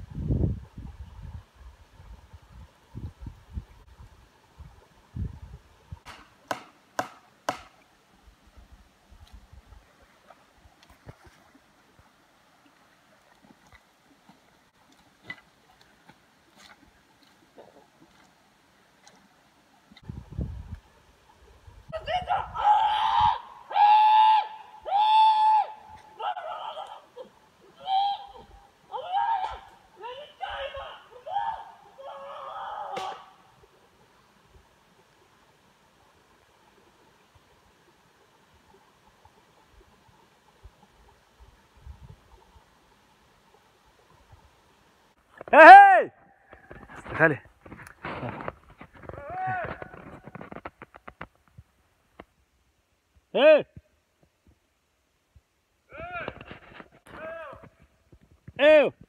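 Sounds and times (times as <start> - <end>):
high-pitched wordless cries: 21.9 - 33.2.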